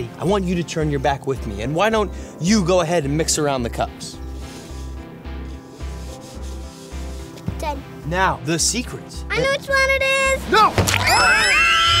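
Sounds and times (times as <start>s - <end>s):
styrofoam cups sliding on table: 4.2s - 7.4s.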